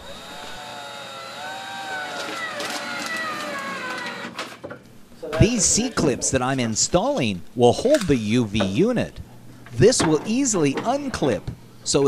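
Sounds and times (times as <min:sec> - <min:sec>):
cordless drill whining: 0:00.0 - 0:04.5.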